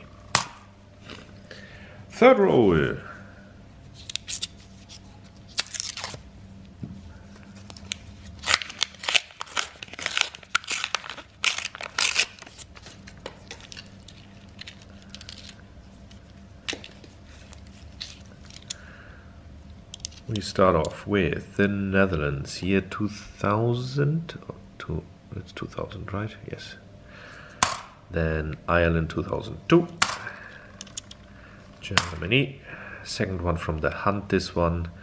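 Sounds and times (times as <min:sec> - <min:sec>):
paper ripping and crinkling: 0:04.0 - 0:06.2, 0:07.5 - 0:15.6, 0:16.9 - 0:18.6.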